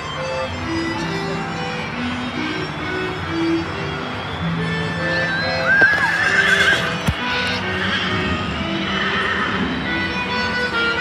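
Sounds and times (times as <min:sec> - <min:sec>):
background music: 0:00.0 - 0:11.0
horse whinny over loudspeakers: 0:05.4 - 0:07.0.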